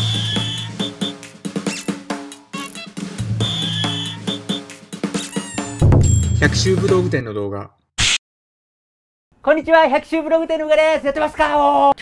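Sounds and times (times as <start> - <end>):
upbeat jingle music: 0.1 - 7.2
deep bass hit: 5.8 - 7.0.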